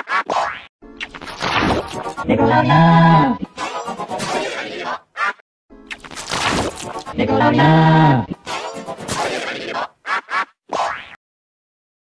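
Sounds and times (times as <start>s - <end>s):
quirky cartoon music: 0.0s - 9.9s.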